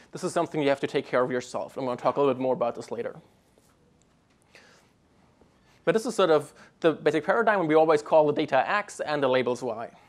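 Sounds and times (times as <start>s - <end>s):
man speaking: 0.0s - 3.4s, 5.8s - 10.0s
faint soft breath: 4.4s - 6.8s.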